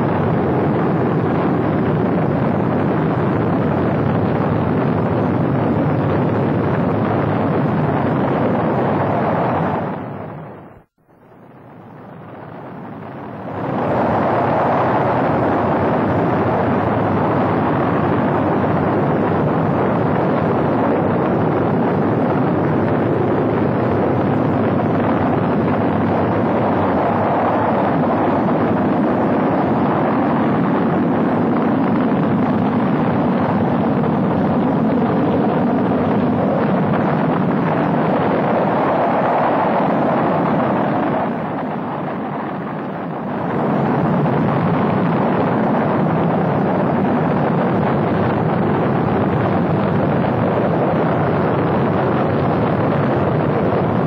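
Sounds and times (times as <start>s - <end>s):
rocket engines rumbling: 0.0s - 54.0s.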